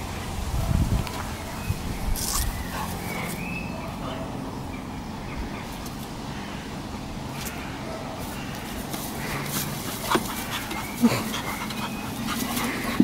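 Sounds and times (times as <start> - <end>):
dogs snuffling and rustling: 2.2 - 4.4, 7.3 - 13.0.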